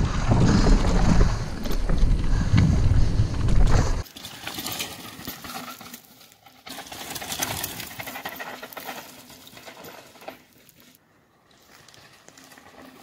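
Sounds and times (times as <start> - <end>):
bike clicking and rattling: 0.0 - 13.0
bike tyres rolling over gravel: 0.0 - 13.0.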